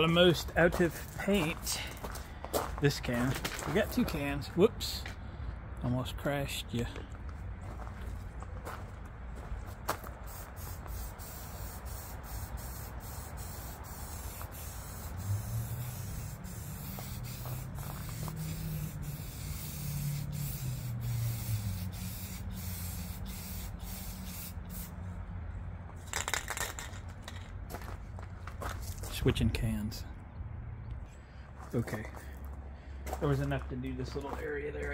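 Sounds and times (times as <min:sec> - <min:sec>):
spray paint can hissing: 0:10.2 - 0:25.0, 0:26.1 - 0:27.4.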